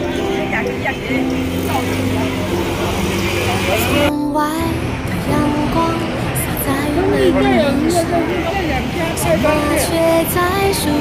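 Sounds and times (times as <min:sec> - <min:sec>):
people's voices: 0:00.0 - 0:11.0
scooter and car engines: 0:00.0 - 0:11.0.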